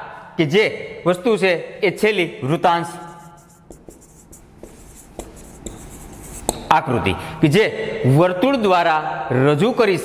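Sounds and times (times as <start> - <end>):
marker scratching on whiteboard: 2.8 - 7.0.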